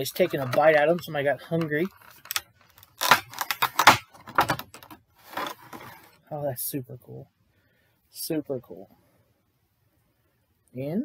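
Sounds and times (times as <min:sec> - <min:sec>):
plastic case clacking and rustling: 0:00.0 - 0:06.2.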